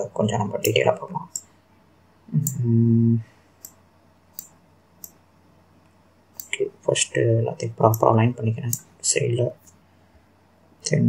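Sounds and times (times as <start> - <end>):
man humming: 2.3 - 3.4
computer mouse clicks: 3.6 - 5.2, 6.4 - 6.6.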